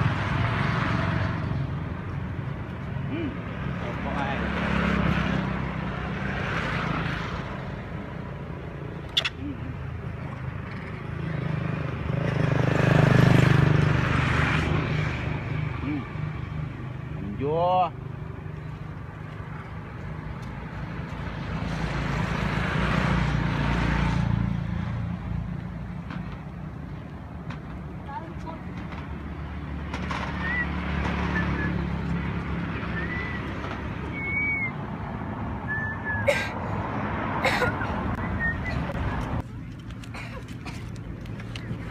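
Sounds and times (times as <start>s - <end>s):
road traffic passing: 0.0s - 41.9s.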